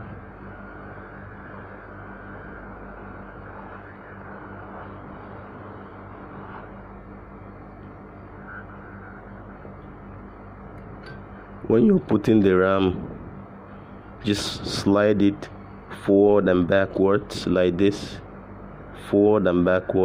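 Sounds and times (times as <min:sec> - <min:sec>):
hot air blower hissing: 0:00.0 - 0:07.7, 0:11.0 - 0:18.2.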